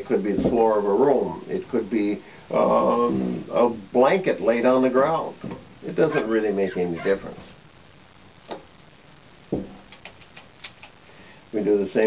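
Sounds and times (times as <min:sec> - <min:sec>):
knock: 0:09.5 - 0:09.8.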